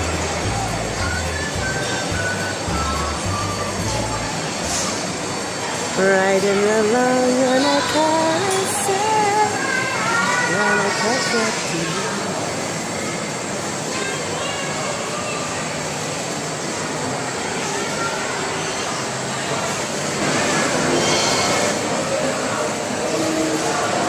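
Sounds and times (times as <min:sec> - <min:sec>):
background chatter: 0:00.0 - 0:24.0
carousel rolling rumble: 0:00.0 - 0:24.0.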